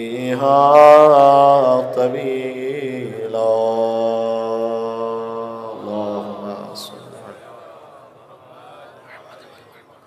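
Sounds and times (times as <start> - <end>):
man chanting into a microphone: 0.0 - 7.5.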